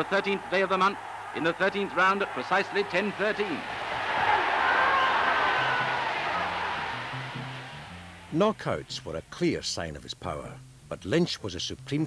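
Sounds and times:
crowd cheering and roaring: 0.0 - 8.4.

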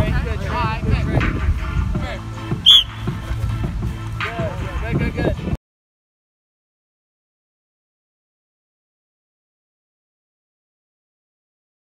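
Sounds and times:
background music: 0.0 - 5.6
sharp whistle blast: 2.6 - 3.1.

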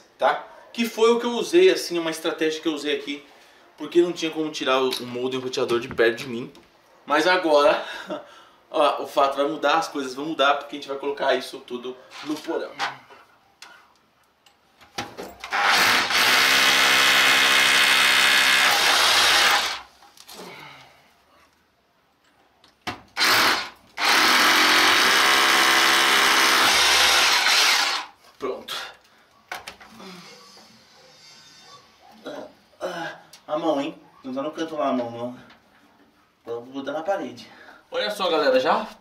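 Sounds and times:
power drill boring into concrete: 15.4 - 19.9, 23.2 - 28.2.

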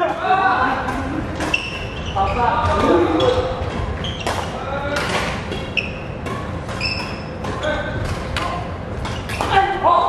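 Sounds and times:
people talking in echoing hall: 0.0 - 10.0
sneakers squeaking on wooden floor: 1.4 - 4.6, 5.5 - 8.2, 9.0 - 9.6.

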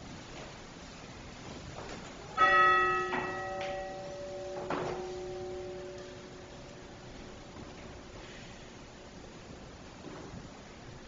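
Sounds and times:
bell ringing: 2.4 - 7.4.

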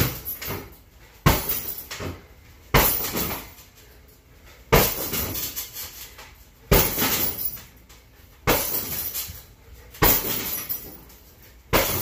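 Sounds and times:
kick smacking heavy bag: 0.0 - 3.6, 4.7 - 5.6, 6.7 - 7.6, 8.4 - 9.3, 10.0 - 11.0, 11.7 - 12.0
chain and metal stand rattling: 0.0 - 12.0.

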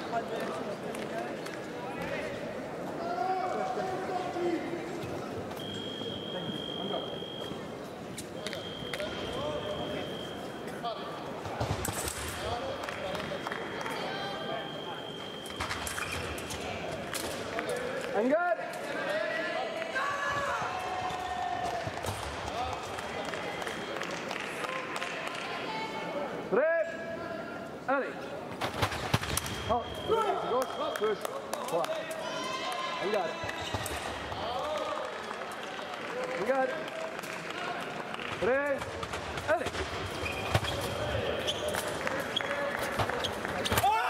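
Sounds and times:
shoes squeaking on floor: 40.1 - 43.5.

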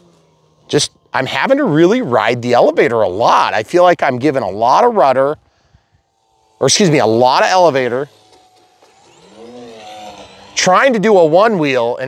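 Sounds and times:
model plane motor whine: 0.0 - 12.0.

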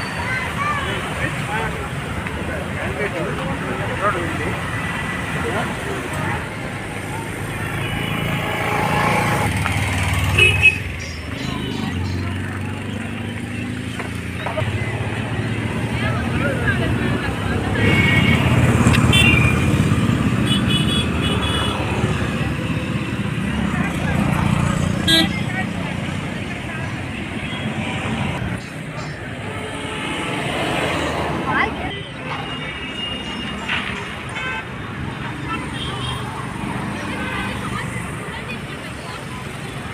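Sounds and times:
cars and motorbikes passing: 0.0 - 39.9.

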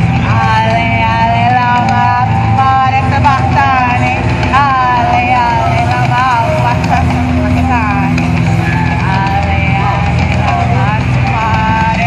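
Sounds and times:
steady low drone: 0.0 - 12.0.

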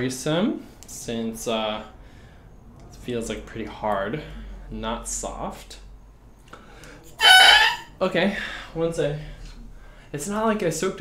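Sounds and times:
oboe reed squawk: 7.2 - 7.9.

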